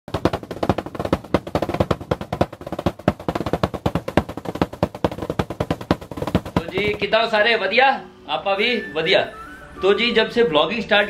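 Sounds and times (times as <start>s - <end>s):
fast drumming on foil-covered drum: 0.1s - 7.5s.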